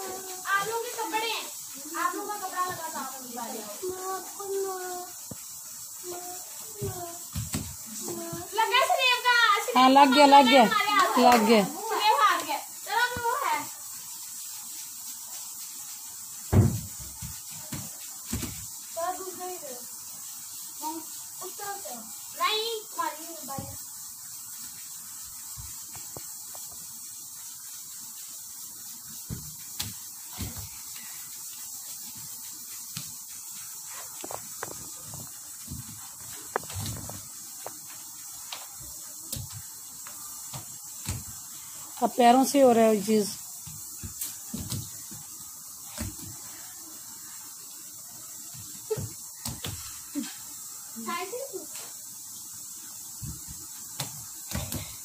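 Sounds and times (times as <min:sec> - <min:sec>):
background hiss: 0:00.0 - 0:55.0
light knocks and thumps: 0:06.8 - 0:08.5, 0:16.5 - 0:18.7, 0:29.2 - 0:30.8, 0:34.2 - 0:37.8, 0:39.3 - 0:41.4, 0:43.6 - 0:45.3, 0:45.9 - 0:46.4, 0:53.2 - 0:55.0
loud thump: 0:16.5 - 0:16.9.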